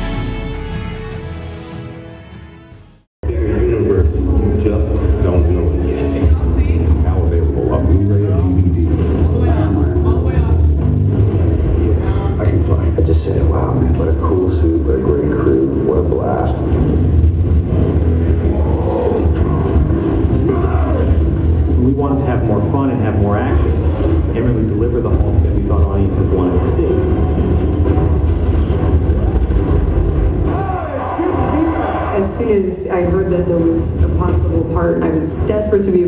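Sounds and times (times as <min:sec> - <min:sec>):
movie soundtrack through speakers: 0:00.0 - 0:36.0
muffled film dialogue: 0:03.2 - 0:36.0.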